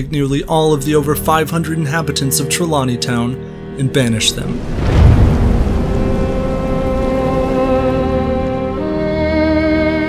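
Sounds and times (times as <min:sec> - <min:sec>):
wind rushing: 0:04.2 - 0:08.8
deep rumbling boom: 0:04.3 - 0:08.7.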